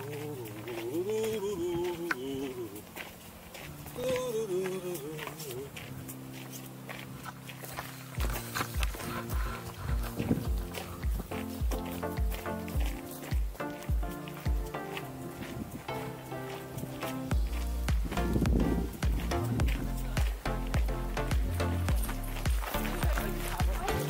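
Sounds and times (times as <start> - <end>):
wavering melody and chords: 0.0 - 24.0
steady kick drum beat: 8.2 - 14.7, 17.3 - 24.0.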